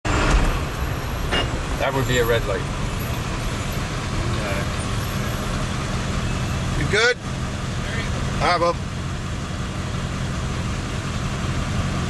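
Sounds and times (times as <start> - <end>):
vehicle rumble from inside cab: 0.1 - 12.0.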